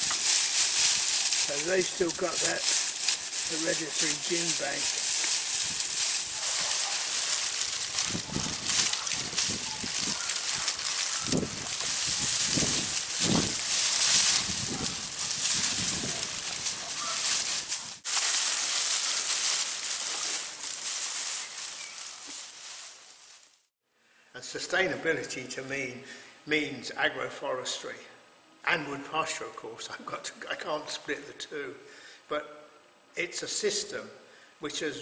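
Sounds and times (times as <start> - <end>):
cattle chewing hay: 0.0 - 23.4
dry leaves and twigs rustling: 0.0 - 23.7.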